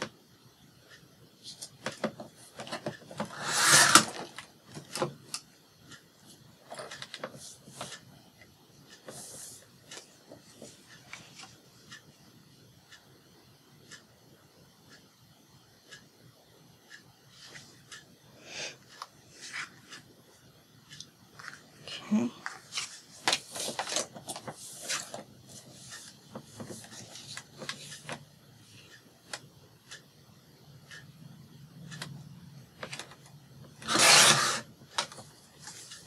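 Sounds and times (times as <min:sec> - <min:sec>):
card rubbing against paper: 0:03.3 - 0:04.0, 0:33.8 - 0:34.7.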